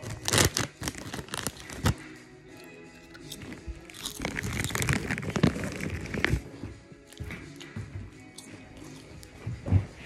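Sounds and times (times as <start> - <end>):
potato chips crunching: 0.0 - 2.0, 2.6 - 6.5
background music: 0.0 - 10.0.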